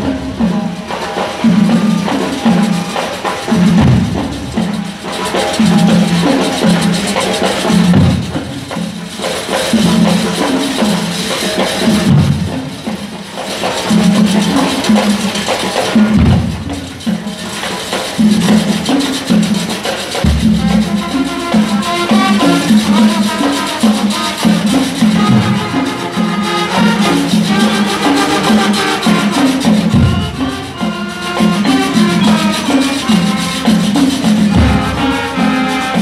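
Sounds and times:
marching brass band playing: 0.0 - 36.0.

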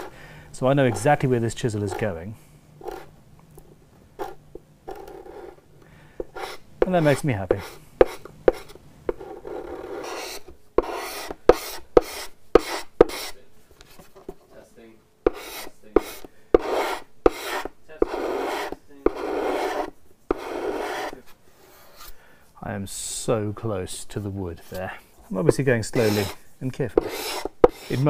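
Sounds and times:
chisel scraping lacquer: 6.3 - 13.4, 15.3 - 22.1, 25.9 - 28.0.

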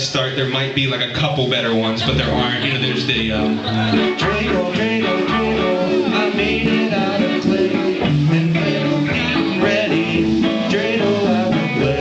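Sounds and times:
live instrumental music: 0.0 - 12.0.

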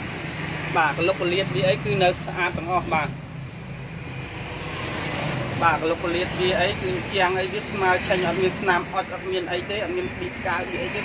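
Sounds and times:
man speaking: 0.7 - 3.2, 5.6 - 11.0.

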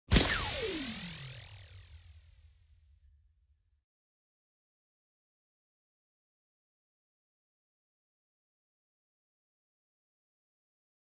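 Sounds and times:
whoosh sweeping down in pitch: 0.1 - 2.1
sudden hit: 0.1 - 2.2.

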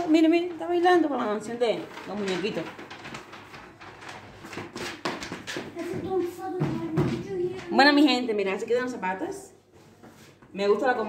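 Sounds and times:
small shoes tapping on tile floor: 2.1 - 8.2.

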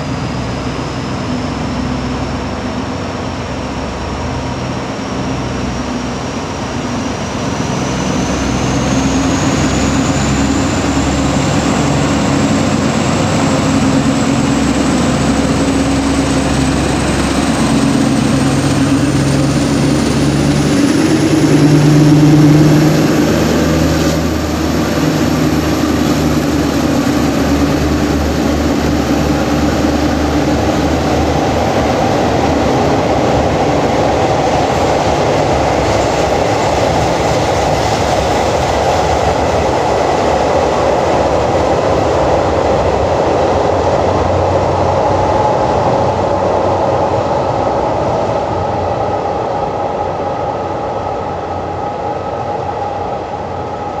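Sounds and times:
train wheels rumbling on track: 0.0 - 54.0.

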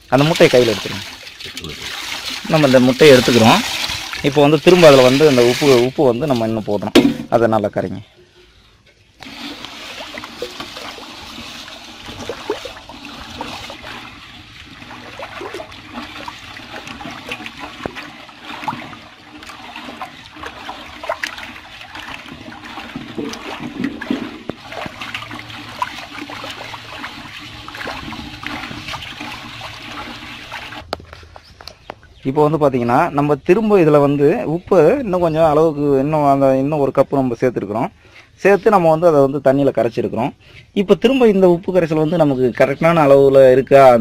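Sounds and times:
water swishing and sloshing: 0.0 - 6.9, 8.4 - 31.5.

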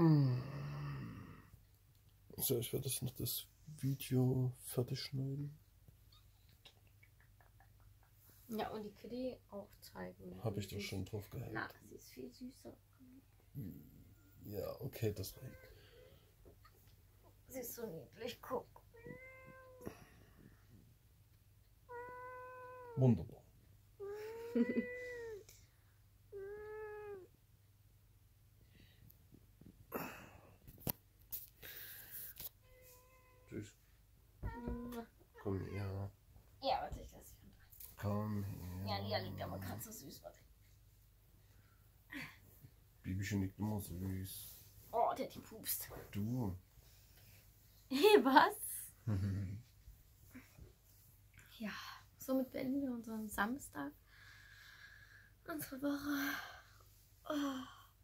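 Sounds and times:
cat meowing: 18.9 - 20.1, 21.9 - 23.0, 26.3 - 27.3, 32.6 - 33.6, 34.4 - 36.0.

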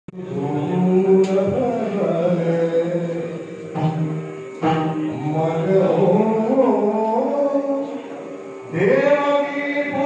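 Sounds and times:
person singing long held notes: 0.1 - 10.0.

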